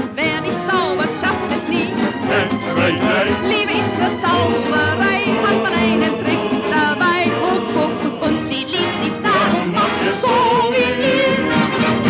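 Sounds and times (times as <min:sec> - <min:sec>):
vintage song with vibrato melody: 0:00.0 - 0:12.0.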